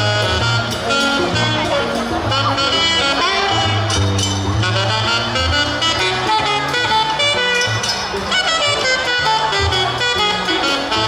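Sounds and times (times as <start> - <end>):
low bass notes: 0.0 - 11.0
saxophone melody: 0.0 - 11.0.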